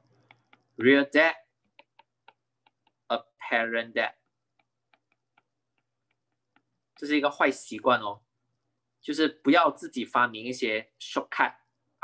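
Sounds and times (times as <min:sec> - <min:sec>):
stylus tapping on glass screen: 0:00.0 - 0:00.8, 0:01.4 - 0:07.2.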